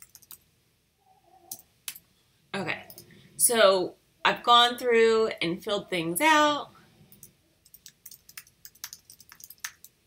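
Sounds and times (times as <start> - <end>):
keyboard keystrokes: 7.7 - 9.9.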